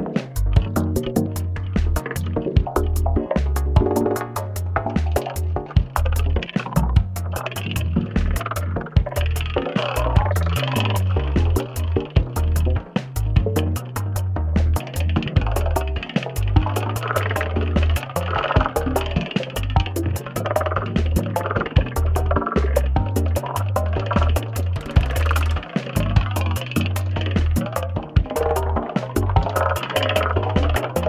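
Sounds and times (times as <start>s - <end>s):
programmed drum beat: 0.0s - 31.0s
pulsing synth bass: 0.0s - 31.0s
sequenced synth note patterns: 0.0s - 31.0s
steady high tick: 0.0s - 31.0s.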